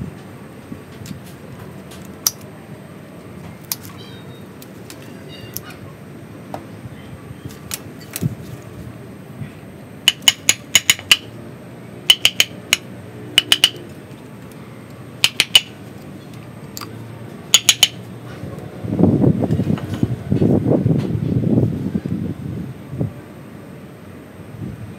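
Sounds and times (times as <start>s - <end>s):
metallic tool clicks: 2.1s - 2.4s, 3.7s - 4.0s, 10.1s - 11.3s, 12.1s - 13.9s, 15.2s - 16.9s, 17.6s - 18.0s.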